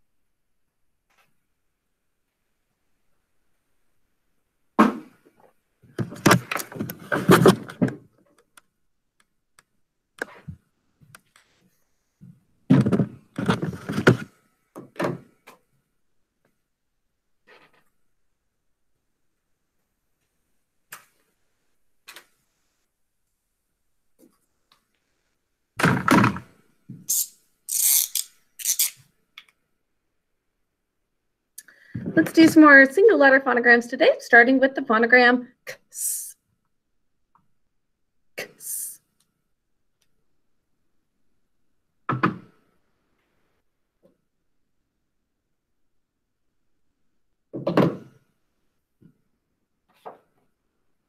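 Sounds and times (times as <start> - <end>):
woman making hissing sound: 27.1 - 29.0, 38.4 - 39.0.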